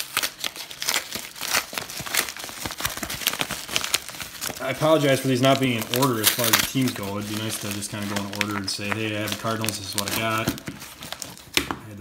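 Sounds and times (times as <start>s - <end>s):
paper envelope tearing and crinkling: 0.0s - 11.6s.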